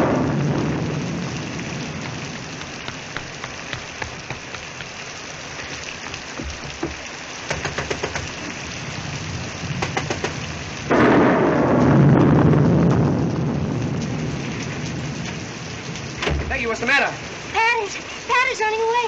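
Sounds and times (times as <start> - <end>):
thunder rolling: 0.0 - 4.6, 8.2 - 17.6
steady rain: 0.0 - 19.0.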